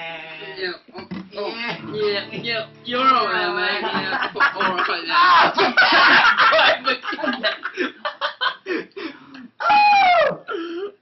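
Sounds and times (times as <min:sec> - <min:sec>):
young men laughing: 0:03.6 - 0:09.2
man crying out: 0:09.5 - 0:11.0.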